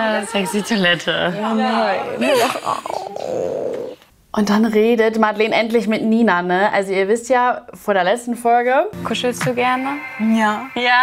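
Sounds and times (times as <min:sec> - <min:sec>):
women laughing and exclaiming: 0:00.0 - 0:02.6
rough drawn-out vocal sound: 0:02.0 - 0:04.0.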